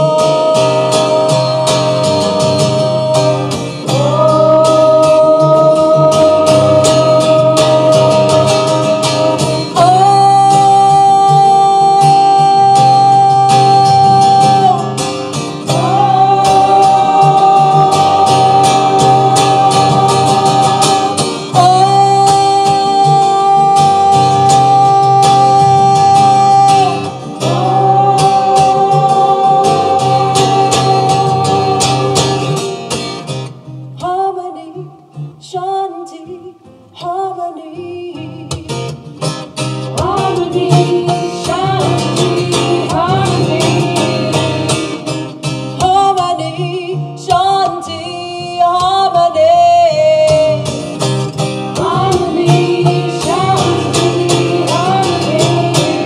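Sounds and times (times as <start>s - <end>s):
strummed acoustic guitar: 0.0s - 35.4s, 36.6s - 56.0s.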